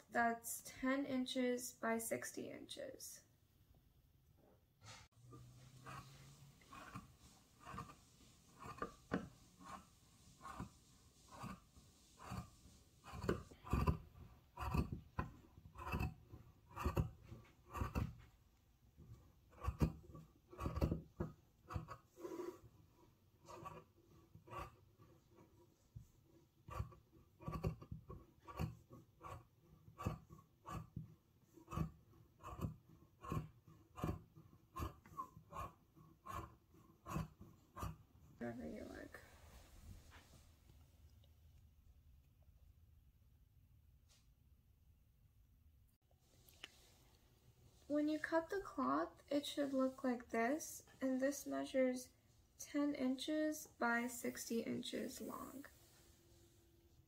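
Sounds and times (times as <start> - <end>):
scissors cutting cloth: 5.4 - 18.2, 19.5 - 22.7, 23.4 - 25.6, 26.6 - 38.1.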